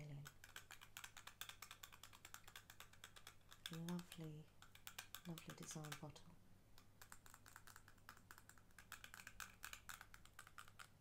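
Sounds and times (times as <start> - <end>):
fingernails tapping on glass bottle: 0.0 - 6.2.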